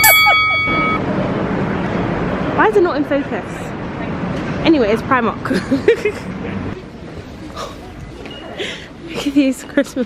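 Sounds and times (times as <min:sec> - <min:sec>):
woman laughing: 0:00.0 - 0:00.8
steady electronic beep: 0:00.0 - 0:01.0
street and traffic noise: 0:00.0 - 0:10.0.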